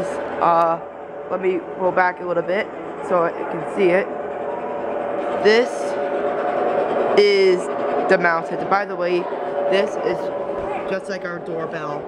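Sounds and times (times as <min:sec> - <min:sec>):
steady background hum: 0:00.0 - 0:12.0
child speaking: 0:08.2 - 0:12.0.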